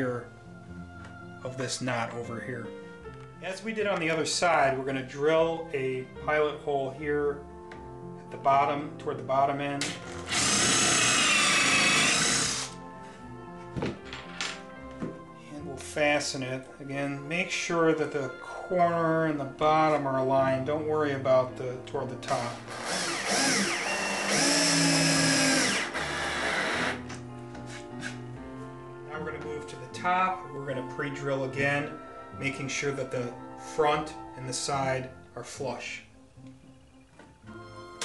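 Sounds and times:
background music: 0:00.0 - 0:38.0
drill click: 0:09.8 - 0:12.8, 0:22.7 - 0:27.2
power drill whining: 0:10.0 - 0:12.8, 0:22.5 - 0:27.2.

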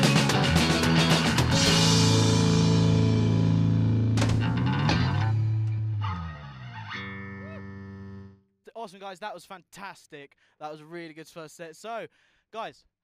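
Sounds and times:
rock band ringing chords: 0:00.0 - 0:08.4
sustained guitar note: 0:00.0 - 0:08.4.

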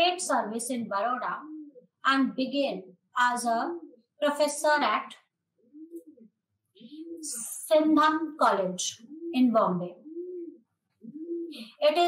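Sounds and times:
woman's voice: 0:00.0 - 0:01.4, 0:02.0 - 0:05.2, 0:07.2 - 0:10.0, 0:11.6 - 0:12.0
pigeon cooing: 0:01.0 - 0:02.0, 0:03.6 - 0:04.2, 0:05.6 - 0:12.0.

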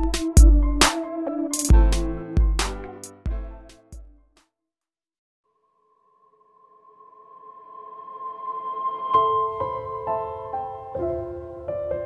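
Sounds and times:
ambient music of long held tones: 0:05.5 - 0:12.0.

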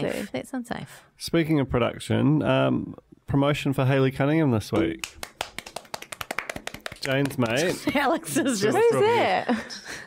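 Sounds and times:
hand claps and taps: 0:04.8 - 0:08.1.

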